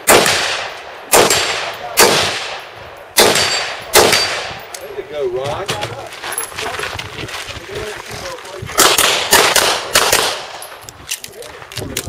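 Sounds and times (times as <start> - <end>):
handgun shots: 0.1 - 2.6, 3.2 - 4.6, 8.8 - 10.6.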